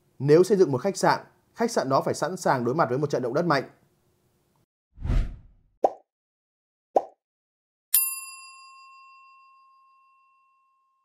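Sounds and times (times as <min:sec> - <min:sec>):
bright bell-like ding: 0:08.0 - 0:11.0.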